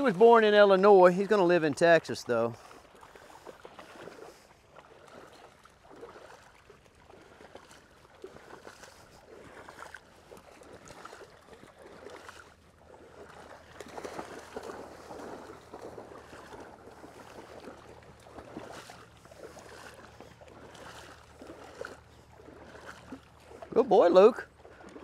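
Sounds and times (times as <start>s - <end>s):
dogs splashing through water: 0.0s - 25.0s
person wading through water: 0.0s - 25.0s.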